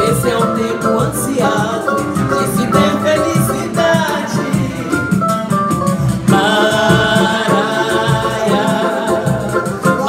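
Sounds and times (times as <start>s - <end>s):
samba band playing: 0.0s - 10.0s.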